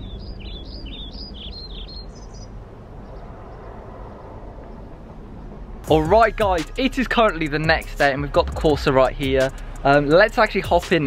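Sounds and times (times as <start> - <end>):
small bird chirping: 0.0 - 5.6
low outdoor rumble: 0.0 - 11.0.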